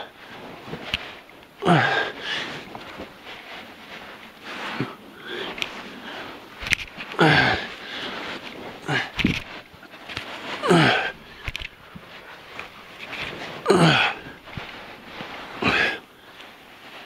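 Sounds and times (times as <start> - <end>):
man breathing hard and groaning: 1.6 - 2.6, 7.1 - 9.4, 10.6 - 11.6, 13.6 - 14.4, 15.6 - 16.4.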